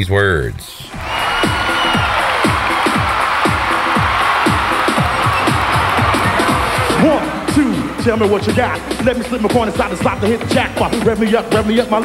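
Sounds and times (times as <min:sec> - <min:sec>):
electronic music with falling sweeps: 0:01.3 - 0:12.0.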